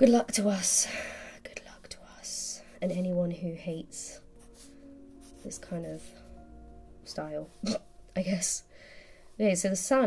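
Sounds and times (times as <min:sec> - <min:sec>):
pencil scratching on paper: 0:04.3 - 0:06.2
soft breath: 0:08.7 - 0:09.4.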